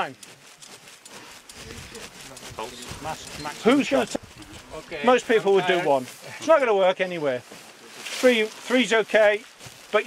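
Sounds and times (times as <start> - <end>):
low outdoor background: 0.0 - 10.0.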